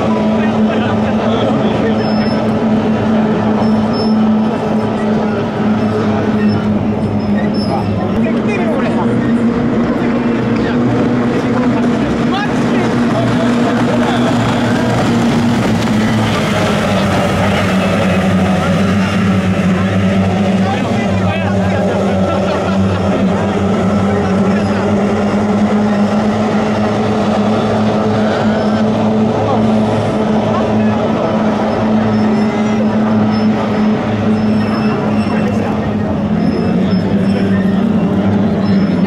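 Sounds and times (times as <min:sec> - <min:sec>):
outboard engines at full throttle: 0:00.0 - 0:39.0.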